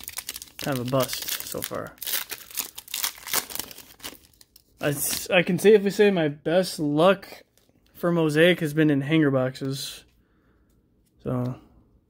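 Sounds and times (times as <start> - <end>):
foil wrapper tearing and crinkling: 0.0 - 5.3.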